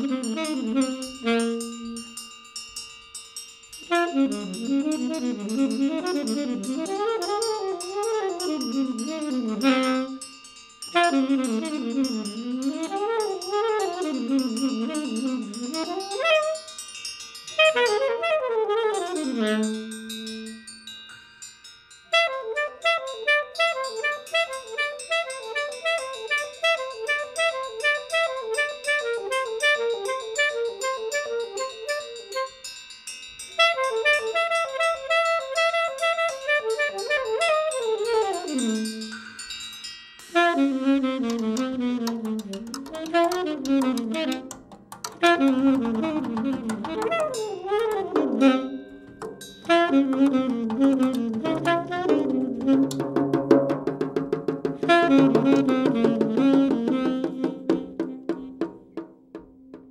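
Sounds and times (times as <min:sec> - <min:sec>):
saxophone playing jazz: 0:00.0 - 0:02.2, 0:03.9 - 0:16.8, 0:17.5 - 0:20.7, 0:22.1 - 0:32.7, 0:33.6 - 0:39.4, 0:40.3 - 0:59.0
drum kit with cymbals: 0:23.7 - 0:59.9.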